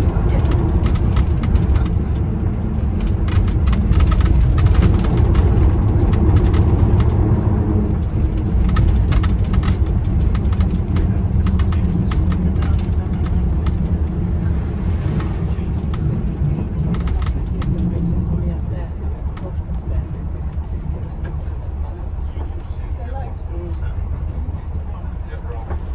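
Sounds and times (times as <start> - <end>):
bodywork clicks and rattles: 0.0 - 18.0
bus engine and road rumble: 0.0 - 25.9
passengers talking faintly: 0.0 - 25.9.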